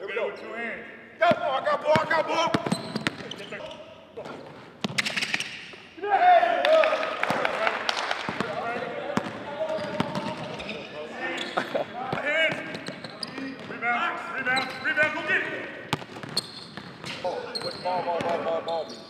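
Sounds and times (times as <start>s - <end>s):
basketballs bouncing on hardwood: 1.3s - 3.4s, 4.2s - 5.2s, 8.3s - 10.7s, 12.1s - 13.8s, 15.9s - 18.5s.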